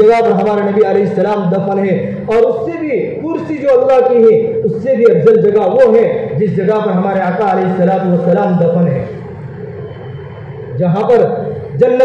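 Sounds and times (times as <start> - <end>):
man speaking: 0.0 - 9.2, 10.7 - 12.0.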